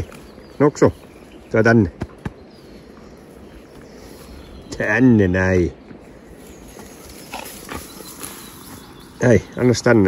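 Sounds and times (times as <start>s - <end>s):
rustling in grass: 6.0s - 10.0s.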